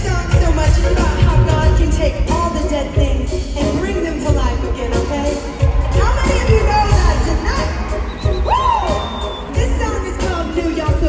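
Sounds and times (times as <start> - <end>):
live pop band with singing: 0.0 - 11.0.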